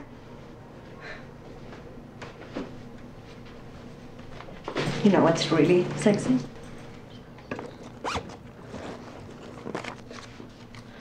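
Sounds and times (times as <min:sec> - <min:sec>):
zipper on a leather bag: 0:07.8 - 0:10.2.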